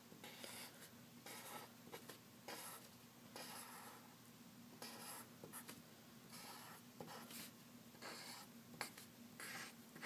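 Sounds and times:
pencil scratching on paper: 0.2s - 4.1s, 4.8s - 10.0s.

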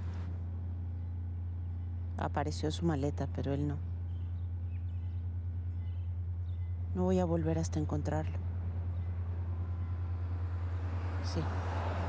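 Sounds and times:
low pulsing drone: 0.0s - 12.0s
vehicle noise: 0.0s - 12.0s.

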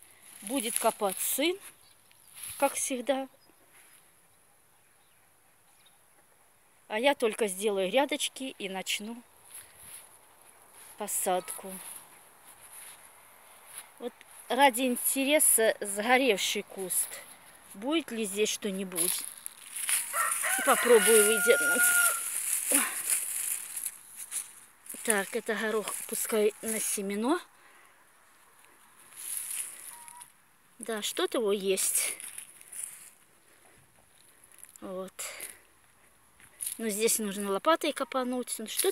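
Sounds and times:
soft rustles: 9.4s - 14.5s, 18.9s - 27.0s, 28.3s - 30.3s, 32.1s - 34.8s
hand rummaging through dry soil: 18.8s - 26.8s, 29.0s - 30.2s.

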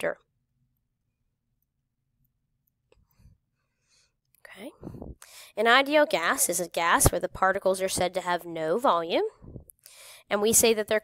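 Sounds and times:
soft intake of breath: 9.8s - 10.3s.

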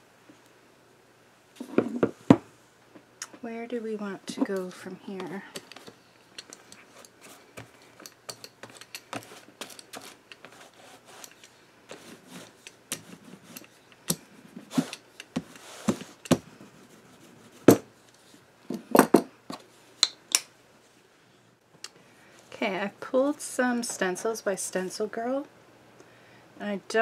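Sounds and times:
rubber roller on paper: 9.1s - 11.3s.

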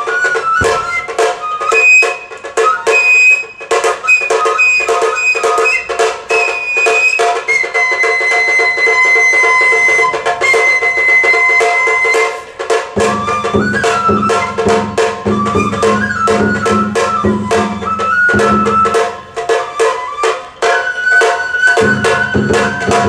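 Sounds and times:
drums beating: 0.0s - 23.0s
high transverse flute: 0.0s - 23.0s.

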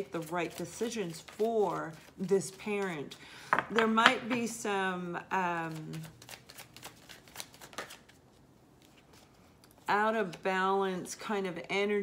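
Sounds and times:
cards being shuffled: 0.0s - 4.4s, 5.7s - 9.9s.

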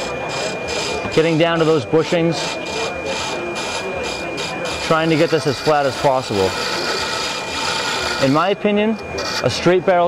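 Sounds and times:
turning tool scraping wood: 0.0s - 8.5s
wood lathe whining: 0.0s - 9.8s.

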